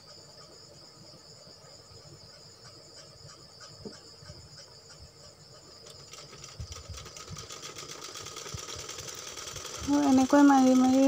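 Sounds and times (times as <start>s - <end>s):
sewing machine stitching: 6.0s - 11.0s.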